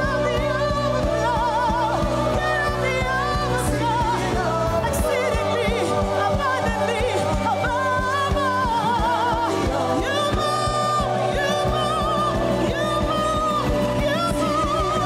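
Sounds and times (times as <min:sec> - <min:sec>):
steady drum beat: 0:00.0 - 0:15.0
woman singing with vibrato: 0:00.0 - 0:15.0.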